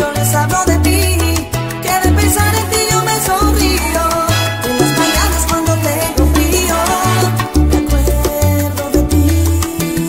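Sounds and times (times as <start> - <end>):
salsa music: 0.0 - 10.0.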